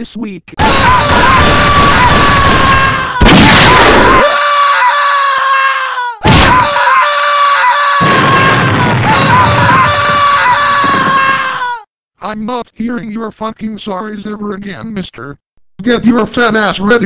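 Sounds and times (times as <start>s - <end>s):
booming impact: 0.6s - 4.2s, 6.2s - 6.7s, 8.0s - 10.2s
high-pitched scream: 0.6s - 11.9s.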